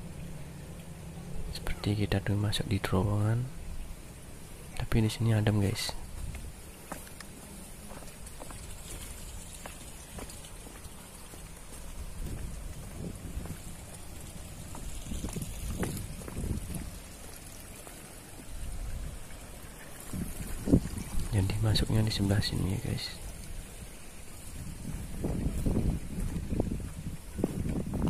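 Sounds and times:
wind rumble on microphone: 0:05.5 - 0:06.7, 0:08.2 - 0:17.3, 0:18.4 - 0:28.0
footsteps on stone path: 0:06.0 - 0:18.1, 0:24.4 - 0:28.0.

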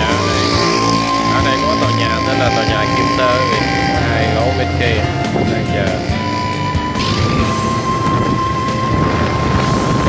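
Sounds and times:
held high note: 0:00.0 - 0:10.0
music with singing voice: 0:00.0 - 0:10.0.

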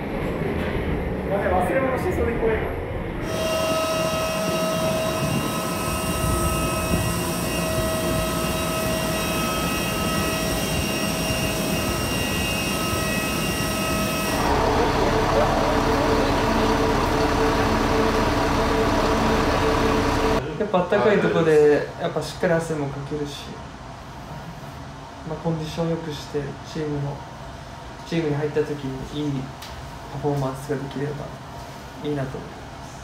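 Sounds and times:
jet airliner engine whine: 0:02.0 - 0:20.4
bus engine idling: 0:13.3 - 0:20.4.

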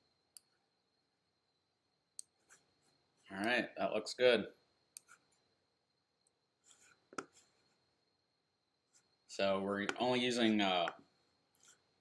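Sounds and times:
computer mouse rubbing: 0:02.2 - 0:03.3, 0:05.0 - 0:05.4, 0:06.6 - 0:07.8, 0:11.5 - 0:11.9.

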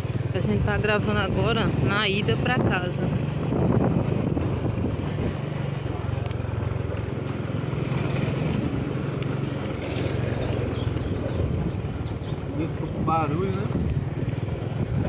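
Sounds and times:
motorcycle engine running: 0:00.0 - 0:15.0
tyres rumbling over cobblestones: 0:00.0 - 0:15.0
wind on microphone: 0:00.5 - 0:06.1, 0:10.1 - 0:15.0.

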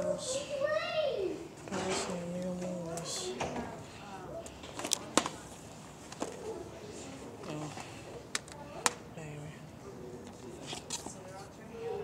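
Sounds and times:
faint people talking: 0:00.0 - 0:12.0.

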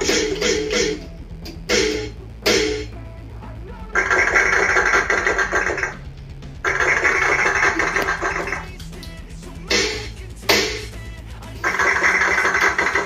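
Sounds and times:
electronic drum pad sounds: 0:00.0 - 0:13.0
steady low hum: 0:00.0 - 0:13.0.

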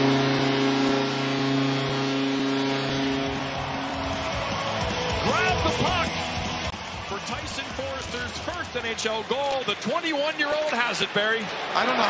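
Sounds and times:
goal horn: 0:00.0 - 0:06.4
crowd cheering: 0:00.2 - 0:12.0
music: 0:03.4 - 0:09.3.

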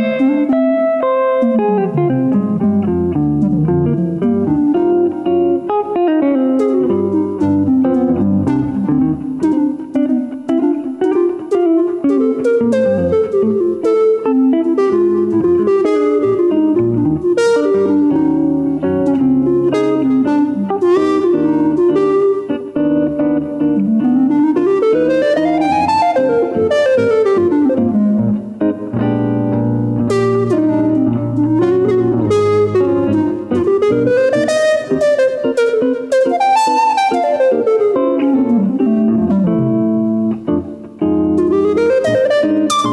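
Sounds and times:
electric guitar picked: 0:00.0 - 0:42.9
wind instrument melody: 0:03.3 - 0:29.1, 0:29.9 - 0:42.9.

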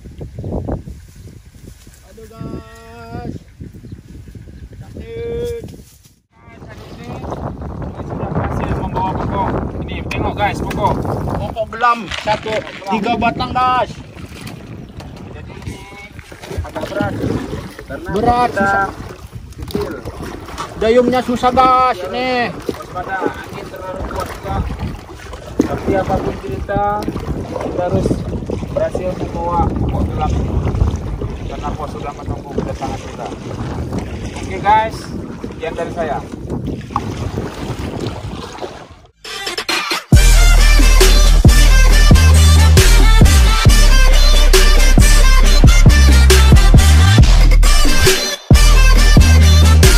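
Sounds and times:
wind buffeting microphone: 0:00.0 - 0:39.1
water sloshing against boat: 0:06.4 - 0:39.2.

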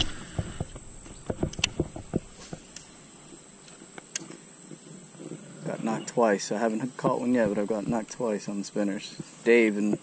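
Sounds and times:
light pattering taps: 0:00.0 - 0:02.9
high-pitched insect trill: 0:00.0 - 0:10.0.

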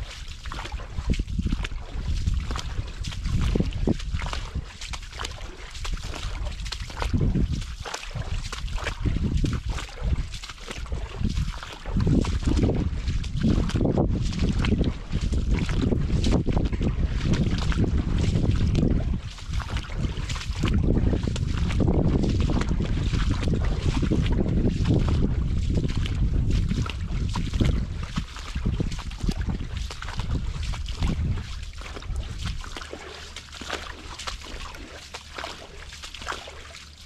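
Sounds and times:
wind buffeting microphone: 0:00.0 - 0:36.5
footsteps splashing through mud: 0:00.0 - 0:37.0.

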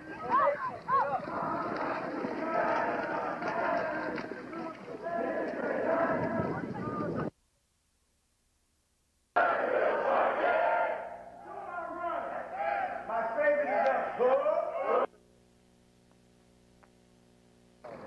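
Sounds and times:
men shouting and yelling: 0:00.0 - 0:07.0, 0:09.4 - 0:15.1
faint steady hum: 0:07.3 - 0:18.0.

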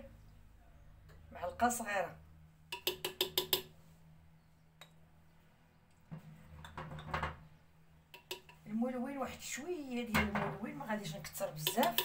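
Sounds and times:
metal spoon clinking: 0:11.6 - 0:12.0.

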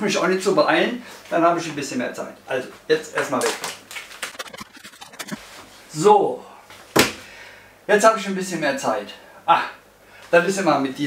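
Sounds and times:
plastic wrapping crackling: 0:03.2 - 0:04.5.

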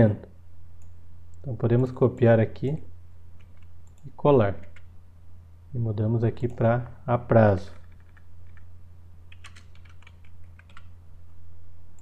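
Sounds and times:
steady low hum: 0:00.0 - 0:12.0
computer keyboard typing: 0:03.4 - 0:04.9, 0:07.7 - 0:08.7, 0:09.3 - 0:10.9.

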